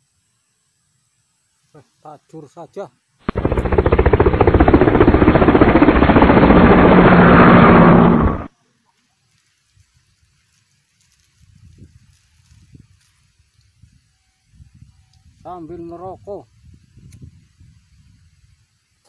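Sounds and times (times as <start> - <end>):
pulsing mechanical drone: 3.3 - 8.5
rustling: 8.9 - 13.4.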